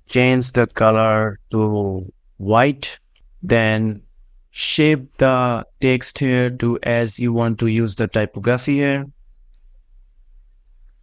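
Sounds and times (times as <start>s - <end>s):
quiet low hum: 0.0s - 11.0s.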